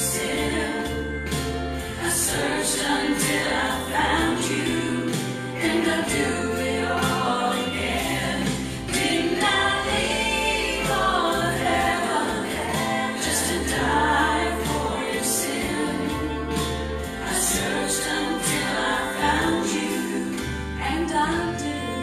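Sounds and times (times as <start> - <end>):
gospel song with accompaniment: 0.0 - 22.0.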